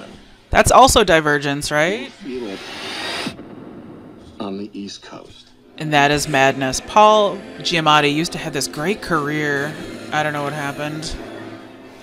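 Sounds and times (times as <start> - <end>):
rushing earthquake sound effect: 2.2 - 5.0.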